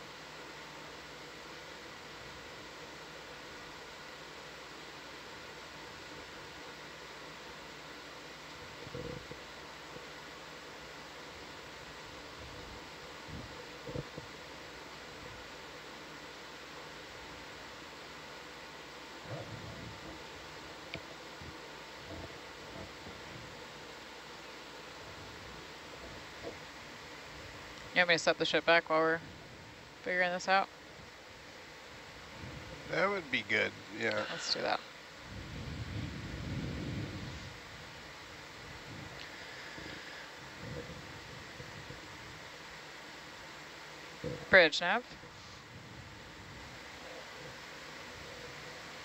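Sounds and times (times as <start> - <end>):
faint audio hiss: 0.0 - 49.0.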